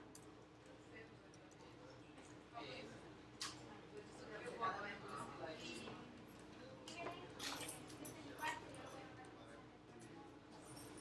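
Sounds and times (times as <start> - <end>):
faint indistinct speech: 0.3 - 11.0.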